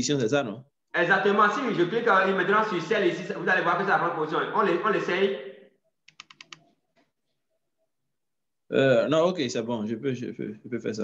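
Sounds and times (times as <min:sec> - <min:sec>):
keyboard keys tapping: 0:06.1 - 0:06.7.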